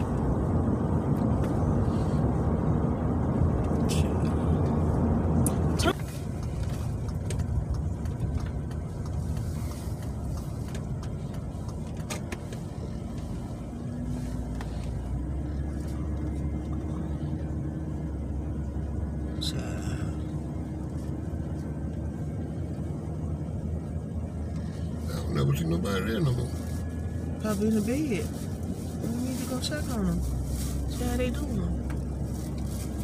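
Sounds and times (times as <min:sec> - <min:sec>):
car cabin road rumble: 0:00.0 - 0:33.0.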